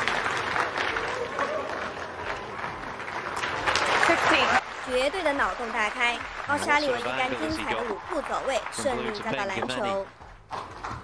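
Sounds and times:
audience applauding: 0:00.0 - 0:10.1
person speaking: 0:06.5 - 0:08.0, 0:08.8 - 0:10.1.

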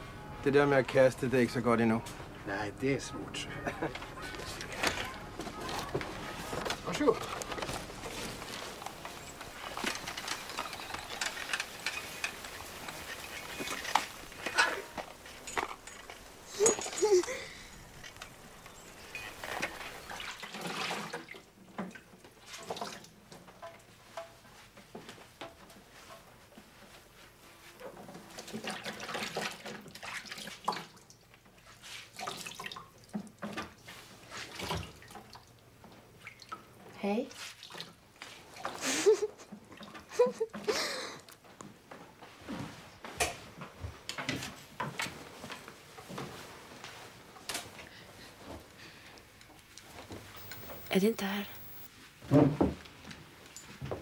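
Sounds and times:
clatter and handling noises: 0:03.8 - 0:20.0
dishes and utensils clinking: 0:09.1 - 0:18.2.

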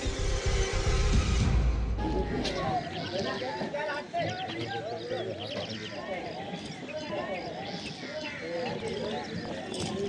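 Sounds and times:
bird calls and chirps: 0:02.0 - 0:10.0.

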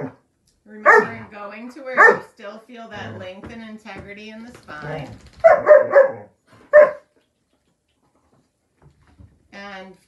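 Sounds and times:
dog barking: 0:00.8 - 0:01.3, 0:02.0 - 0:02.3, 0:05.4 - 0:07.1.

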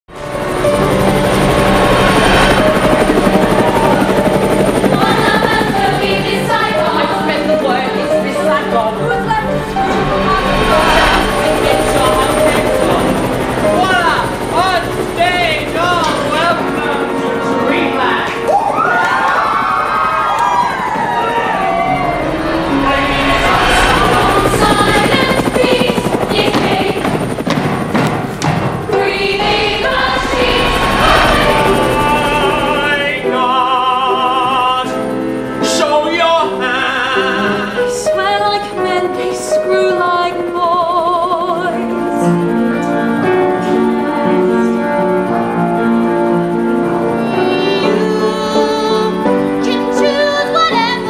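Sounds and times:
helicopter rotor chopping: 0:00.1 - 0:51.0
music: 0:00.1 - 0:51.0.

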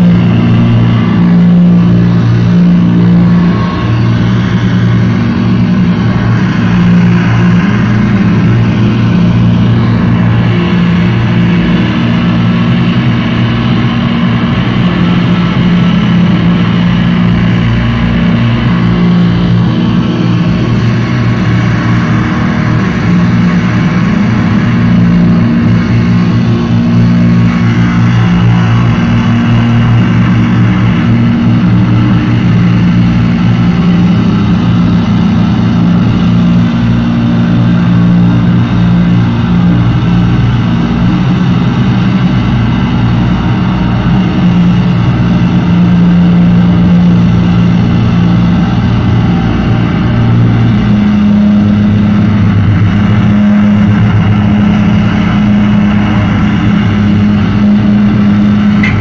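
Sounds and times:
bass guitar: 0:00.0 - 0:59.0
distorted electric guitar: 0:00.0 - 0:59.0
drums: 0:00.0 - 0:59.0.

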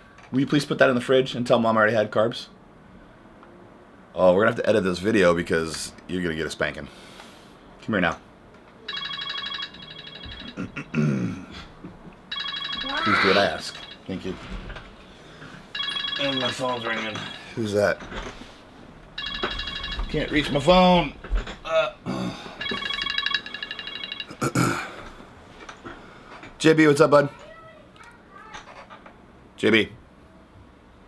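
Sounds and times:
phone ringtone electronic tones: 0:08.9 - 0:10.8, 0:12.3 - 0:14.2, 0:15.7 - 0:17.6, 0:19.2 - 0:20.7, 0:22.6 - 0:24.5
man clearing his throat: 0:10.6 - 0:11.7, 0:24.4 - 0:25.0.

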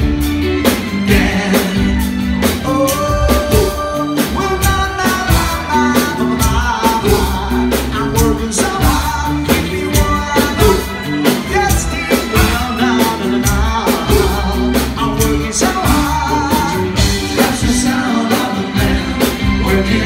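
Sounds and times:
rock band playing: 0:00.0 - 0:20.0
person singing lead: 0:01.0 - 0:20.0.

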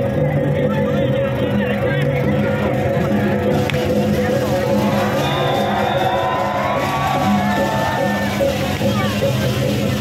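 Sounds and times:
loud music with low tones: 0:00.0 - 0:10.0
crowd shouting: 0:02.3 - 0:09.6.

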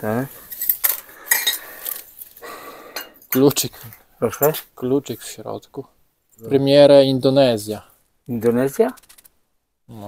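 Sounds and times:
glass tumblers clinking: 0:00.5 - 0:02.0.

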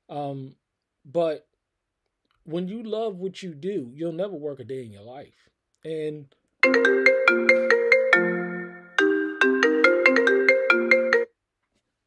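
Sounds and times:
phone ringtone melody: 0:06.6 - 0:11.3.

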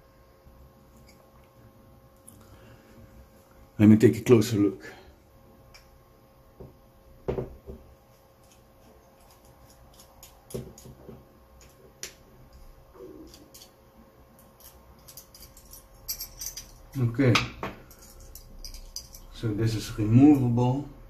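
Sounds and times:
knock: 0:07.3 - 0:07.8.

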